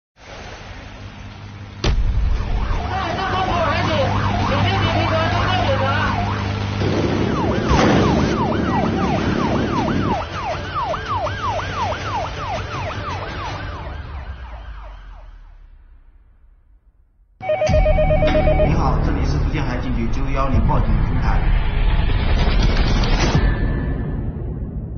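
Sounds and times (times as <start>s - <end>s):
steady engine drone: 0.2s - 10.9s
electronic siren warbling and yelping: 17.4s - 19.0s.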